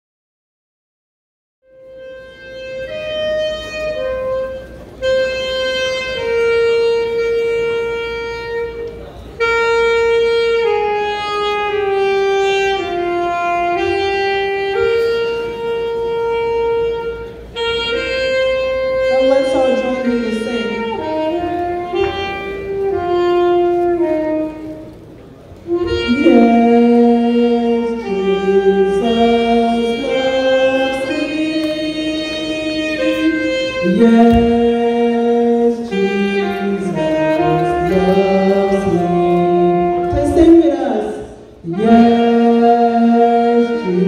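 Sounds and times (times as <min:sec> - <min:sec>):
saxophone playing slow melody: 0:01.6 - 0:44.0.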